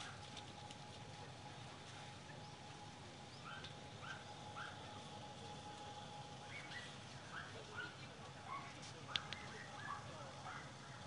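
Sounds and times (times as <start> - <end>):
distant dogs yapping: 0.0 - 0.3, 3.3 - 5.4, 6.4 - 11.0
outdoor background noise: 0.0 - 11.0.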